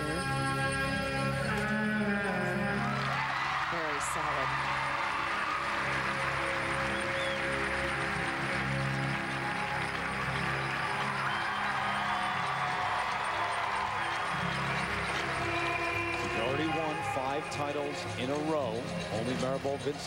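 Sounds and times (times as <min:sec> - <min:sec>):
figure skating program music: 0:00.0 - 0:03.7, 0:04.4 - 0:20.0.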